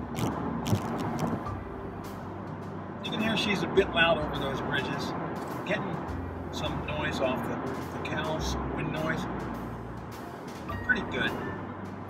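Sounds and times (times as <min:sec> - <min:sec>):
tyre and road noise in car: 0:00.0 - 0:02.7.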